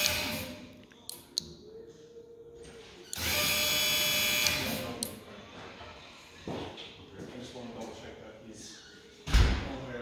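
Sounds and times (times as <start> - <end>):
hydraulic pump motor whine: 3.2 - 4.8.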